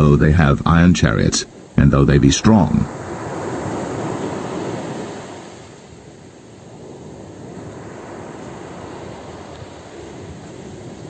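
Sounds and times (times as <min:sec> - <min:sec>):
ocean waves washing in: 0:00.0 - 0:11.0.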